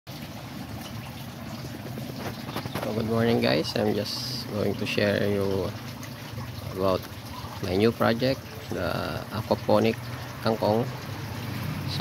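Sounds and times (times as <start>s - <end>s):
water trickling: 0.1s - 12.0s.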